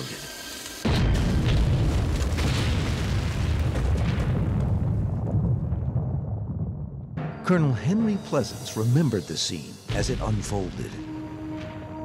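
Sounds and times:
explosion with deep rumble: 0.8 - 7.2.

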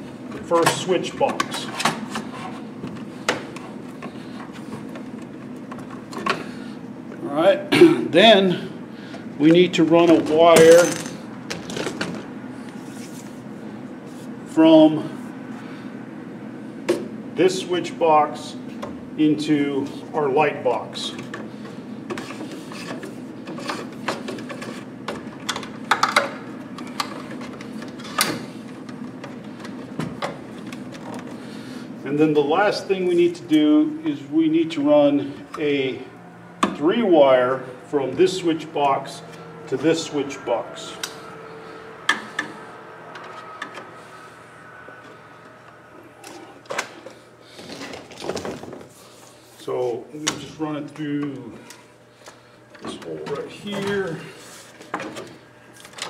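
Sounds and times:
steady low hum: 0.0 - 56.0
cable rustling and scraping: 22.1 - 24.9.

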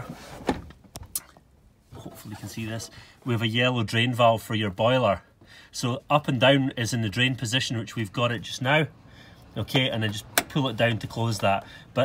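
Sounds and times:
handling knocks and clicks: 10.0 - 10.6.

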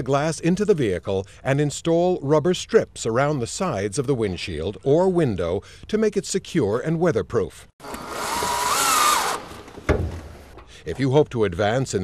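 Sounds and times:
cordless drill whine: 7.8 - 9.8.

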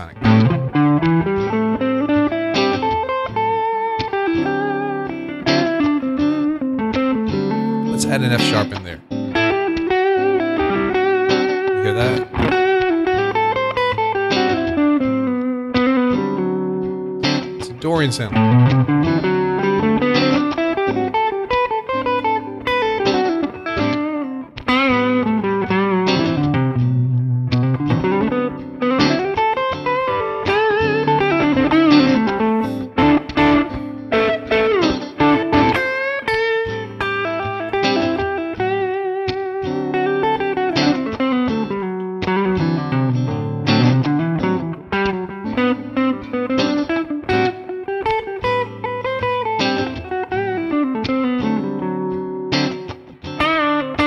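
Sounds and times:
electric guitar playing: 0.0 - 54.0.

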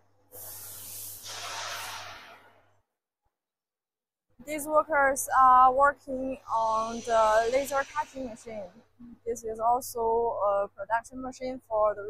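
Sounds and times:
hiss of rushing air: 0.3 - 2.5, 6.6 - 8.5.

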